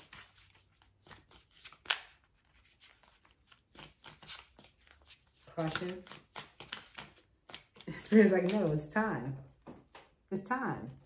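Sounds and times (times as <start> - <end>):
cards being shuffled: 0.0 - 10.2.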